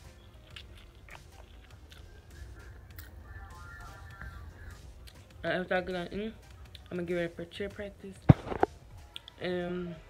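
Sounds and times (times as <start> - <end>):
person chewing noodles: 0.0 - 5.4.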